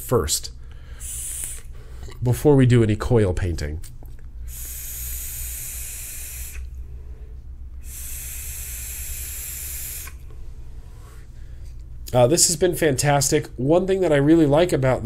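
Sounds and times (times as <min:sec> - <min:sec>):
airy hiss of vaping draws: 0:01.0 - 0:01.7, 0:04.5 - 0:06.7, 0:07.8 - 0:10.2.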